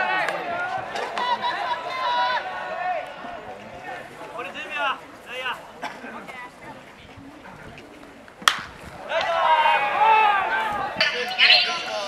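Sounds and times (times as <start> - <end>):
baseball smacking into mitt: 8.4 - 8.8.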